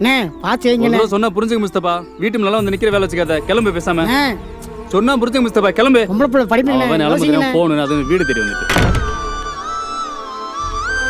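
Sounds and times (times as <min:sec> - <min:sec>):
music of held tones: 0:00.2 - 0:11.0
heavy wooden door shutting: 0:08.5 - 0:09.8.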